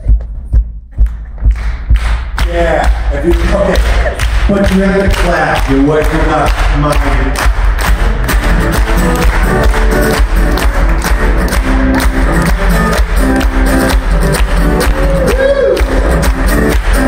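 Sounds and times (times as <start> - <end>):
crowd clapping along: 1.0 - 17.0
acoustic guitar strumming: 7.9 - 15.0.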